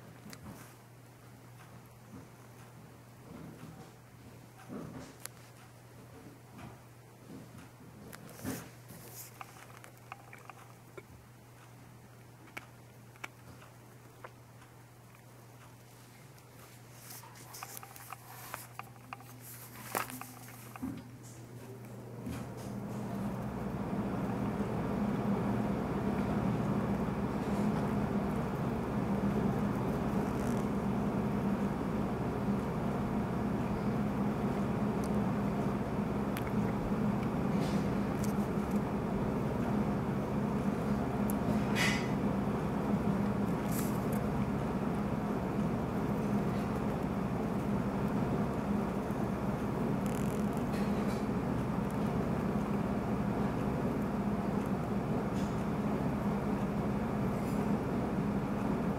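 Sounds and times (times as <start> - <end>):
air conditioner humming: 0.0 - 58.9.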